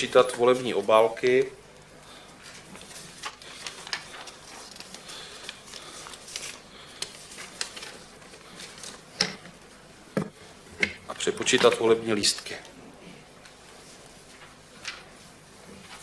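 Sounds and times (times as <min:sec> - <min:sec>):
paper rustling: 0:02.4 - 0:09.8.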